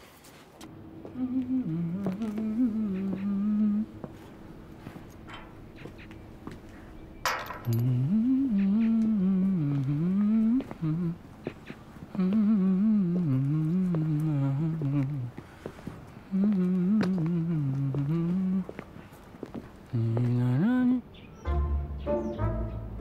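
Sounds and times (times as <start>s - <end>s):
man humming: 1.0s - 6.1s, 7.6s - 15.4s, 16.2s - 18.8s, 19.9s - 21.1s
sharp metallic clank: 7.2s - 8.0s.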